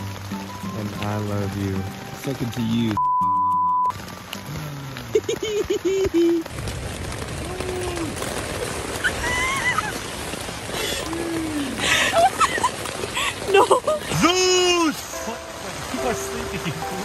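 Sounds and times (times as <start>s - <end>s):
high censor bleep: 3.0s - 3.9s
people laughing: 5.0s - 6.4s, 11.8s - 14.2s
high-pitched squealing laughs: 5.1s - 6.4s, 9.0s - 10.0s.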